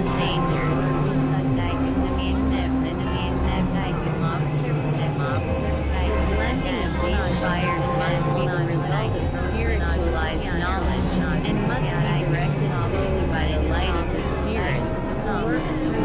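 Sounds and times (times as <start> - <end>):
low bass: 0.0 - 16.0
synthesizer drones: 0.0 - 16.0.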